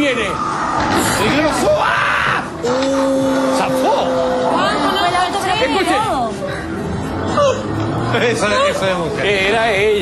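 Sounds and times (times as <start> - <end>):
presenters exclaiming: 1.2 - 5.2.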